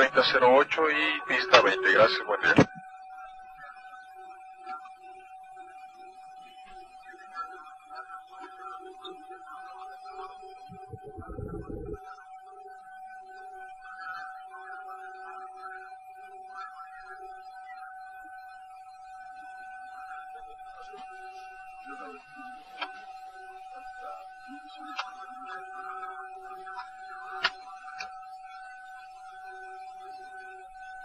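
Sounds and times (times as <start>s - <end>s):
muffled cockpit background noise: 0.0s - 18.4s, 19.0s - 31.0s
steady electrical tone: 10.1s - 12.2s.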